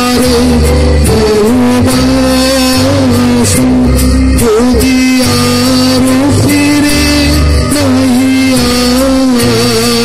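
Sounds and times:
man singing a long note: 0.0 - 10.0.

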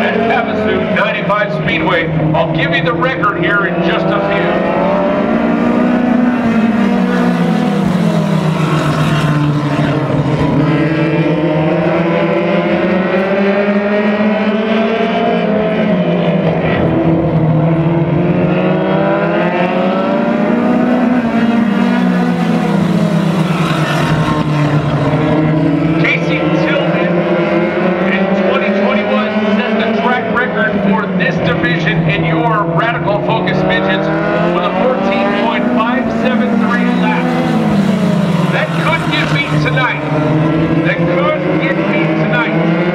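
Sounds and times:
race car engines passing: 0.0 - 42.9.

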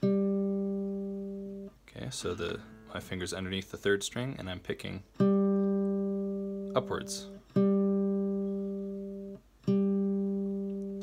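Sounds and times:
guitar string plucked: 0.0 - 3.0, 5.2 - 11.0.

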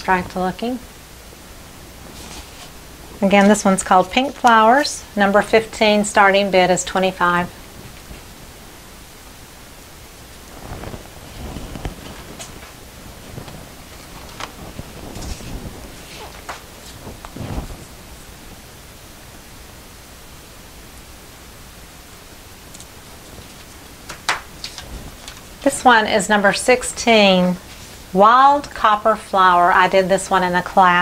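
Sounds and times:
steady background hiss: 0.0 - 31.0
canvas rustling: 1.4 - 5.6, 9.6 - 19.4, 22.7 - 25.8.

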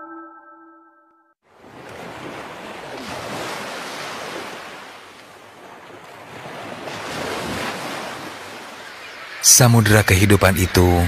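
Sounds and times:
ocean surf washing ashore: 1.5 - 11.0.

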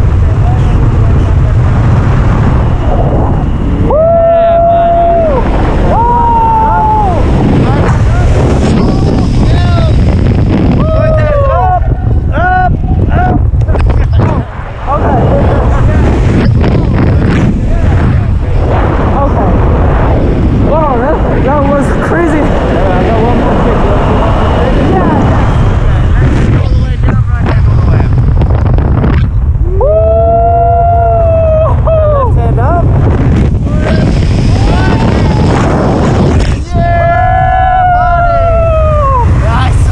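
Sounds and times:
wind roar on microphone: 0.0 - 39.9
people yelling and whooping: 3.8 - 8.4, 10.8 - 13.4, 29.6 - 32.4, 36.6 - 39.6.

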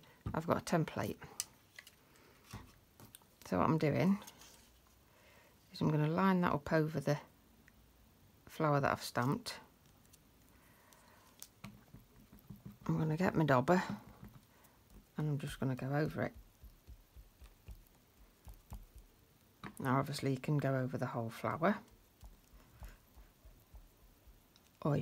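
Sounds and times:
sponge dauber tapping on card: 16.3 - 19.2, 21.9 - 24.5.

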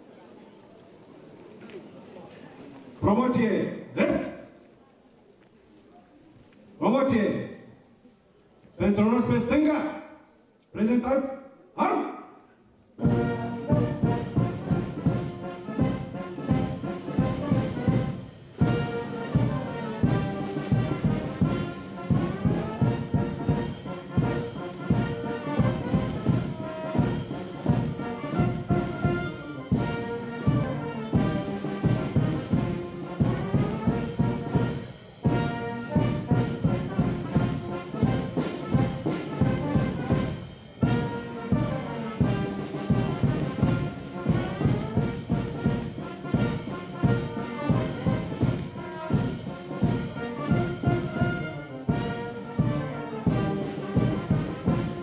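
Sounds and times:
brass band playing a march: 13.0 - 55.0.

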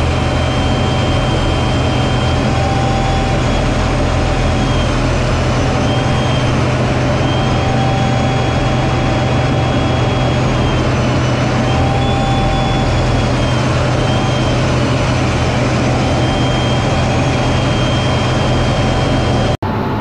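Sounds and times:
high engine whine: 0.0 - 20.0
jet engine low drone: 0.0 - 20.0.

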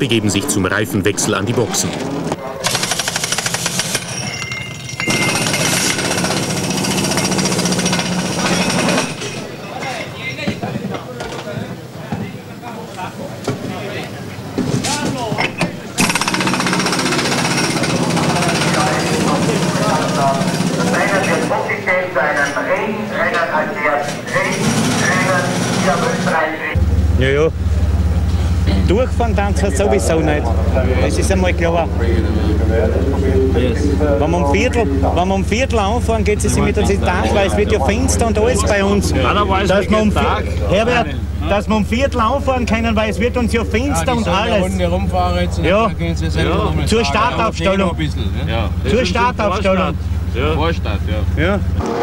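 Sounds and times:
voices: 0.0 - 3.1, 4.2 - 52.0
pneumatic wheel guns rattling: 2.6 - 9.5, 15.5 - 19.6.

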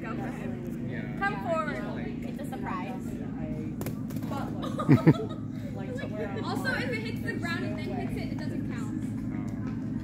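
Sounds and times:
steady low hum: 0.0 - 10.0
person laughing: 4.6 - 5.4.

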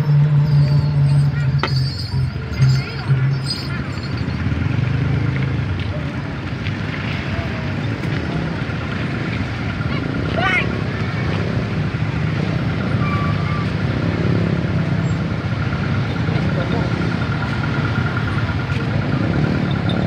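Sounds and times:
motorcycle engines running: 0.0 - 20.0
people talking: 0.4 - 20.0.

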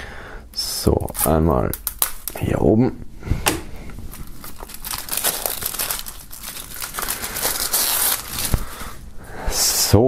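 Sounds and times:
plastic shrink-wrap crinkling: 1.1 - 2.6, 4.0 - 9.1.

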